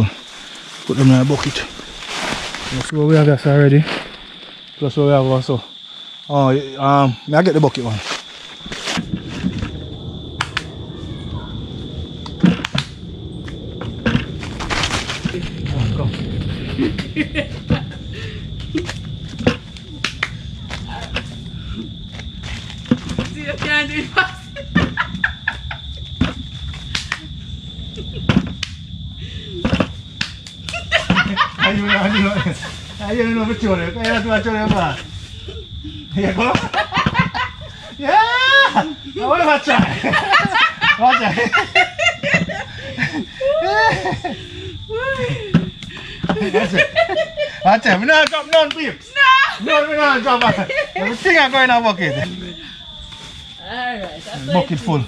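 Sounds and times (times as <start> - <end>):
dry leaves rustling: 0.0 - 4.8, 7.8 - 9.0
voices talking: 0.0 - 8.2, 9.0 - 14.4, 15.2 - 26.3, 29.2 - 55.0
people laughing: 15.8 - 19.0, 23.8 - 26.1, 30.6 - 53.0.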